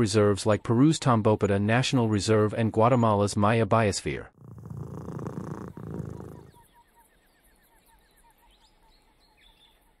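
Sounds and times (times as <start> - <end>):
low purring rumble: 4.4 - 6.6
small bird chirps: 5.0 - 10.0.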